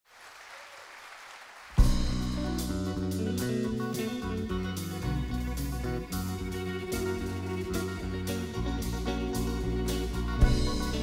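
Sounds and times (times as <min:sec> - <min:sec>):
faint audience applause: 0:00.0 - 0:02.8
live band playing: 0:01.8 - 0:11.0.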